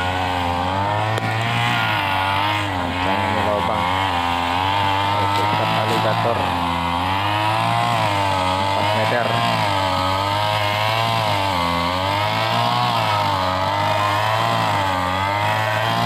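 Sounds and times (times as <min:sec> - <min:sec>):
brush cutter engine cutting grass: 0:00.0 - 0:16.0.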